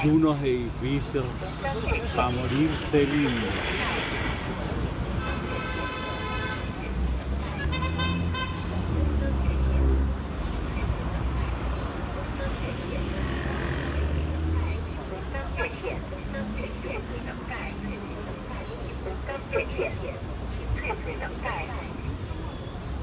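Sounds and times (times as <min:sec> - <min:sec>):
people talking nearby: 0:00.0 - 0:23.0
road traffic rumble: 0:00.0 - 0:23.0
vehicle passing: 0:01.1 - 0:22.6.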